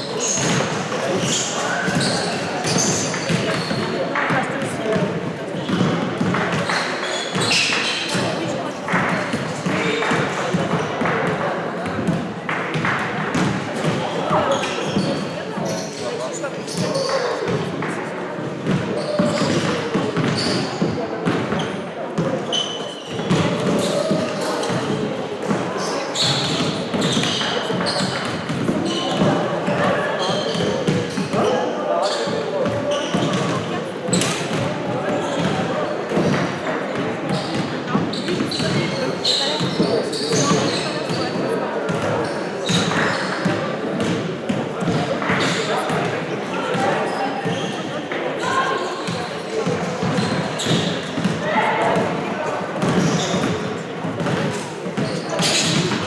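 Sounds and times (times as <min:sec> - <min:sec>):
players calling and chatting: 0:00.0 - 0:56.0.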